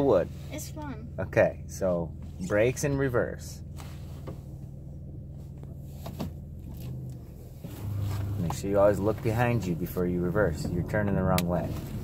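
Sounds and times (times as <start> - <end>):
van engine idling: 0.0 - 12.0.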